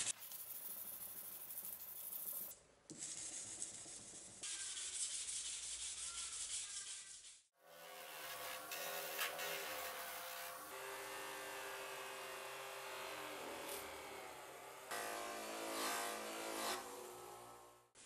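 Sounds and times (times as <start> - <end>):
knife blade rubbed on sandpaper: 4.4 - 10.6
bench grinder motor humming: 8.0 - 17.8
blade scraping on grinding wheel: 14.9 - 17.2.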